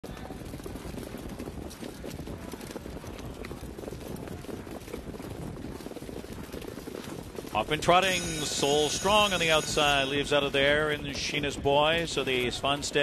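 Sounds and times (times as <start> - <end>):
low rumbling racetrack ambience: 0.0 - 13.0.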